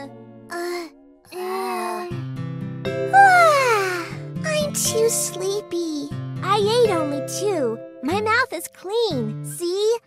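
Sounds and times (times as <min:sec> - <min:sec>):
soft background music: 0:00.0 - 0:10.0
cartoon child moaning sleepily: 0:00.5 - 0:02.2, 0:03.1 - 0:04.2.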